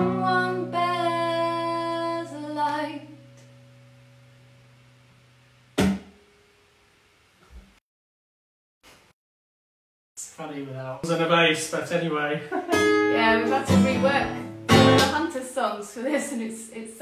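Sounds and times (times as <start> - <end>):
acoustic guitar chord ringing: 0.0 - 6.5, 12.6 - 15.3
sharp knock: 5.8 - 6.2.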